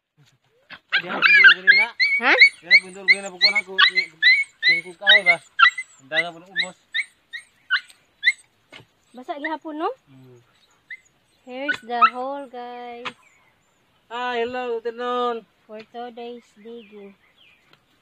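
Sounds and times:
dog voice-like calls: 0:00.6 - 0:12.3
dogs yapping: 0:00.6 - 0:14.0.

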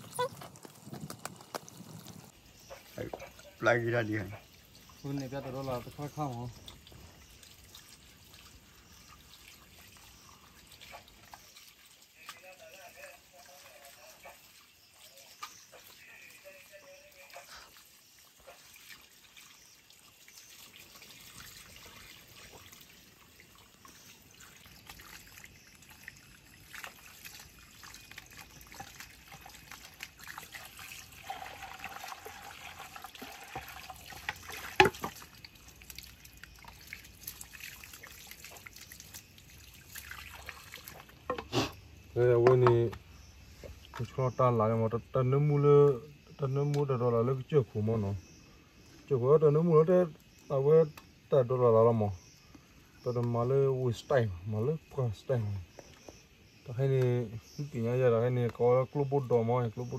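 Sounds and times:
water trickling from hose: 0:00.0 - 0:59.9.

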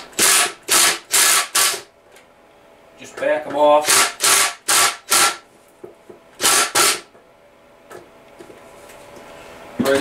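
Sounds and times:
cordless drill whirring: 0:00.2 - 0:01.8, 0:06.4 - 0:07.0.

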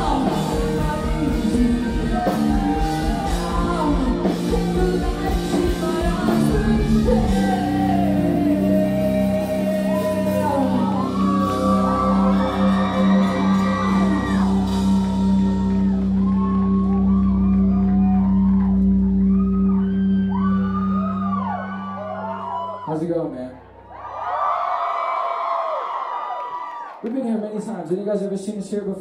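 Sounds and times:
crowd cheering and screaming: 0:00.0 - 0:05.6, 0:09.0 - 0:27.0.

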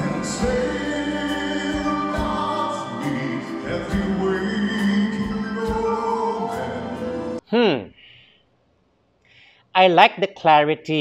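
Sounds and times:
band and orchestra accompaniment: 0:00.0 - 0:07.4
singing in long held notes: 0:00.0 - 0:07.4.

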